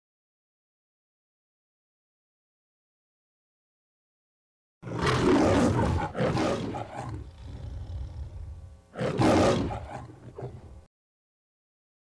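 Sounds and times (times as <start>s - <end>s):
animal roars: 4.8s - 10.7s.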